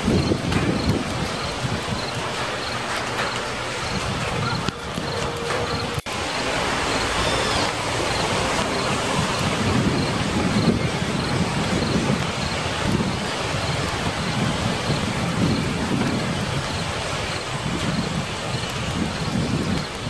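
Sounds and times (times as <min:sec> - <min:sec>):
steady rushing noise: 0:00.0 - 0:20.0.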